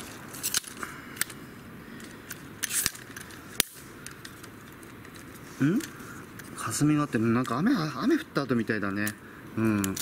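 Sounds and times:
small clicks and crackles: 0.0s - 7.6s, 8.9s - 10.0s
steady low hiss: 0.0s - 10.0s.

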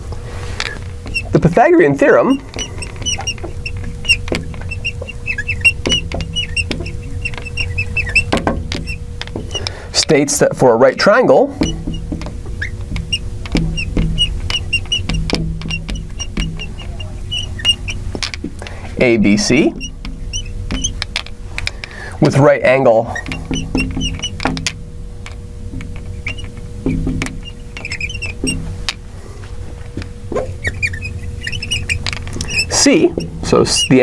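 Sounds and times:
low background hum: 0.0s - 34.0s
marker squeaking on glass: 0.6s - 29.0s, 29.9s - 34.0s
marker tapping on glass: 1.0s - 1.6s, 2.3s - 9.8s, 10.5s - 22.4s, 23.2s - 29.0s, 30.0s - 33.9s.

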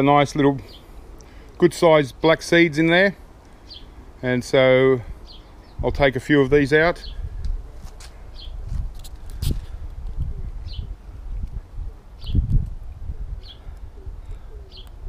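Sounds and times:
faint low cooing: 13.1s - 15.0s.

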